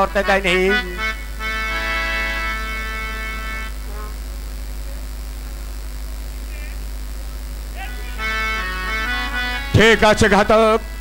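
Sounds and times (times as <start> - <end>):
low sound system hum: 0.0 - 11.0.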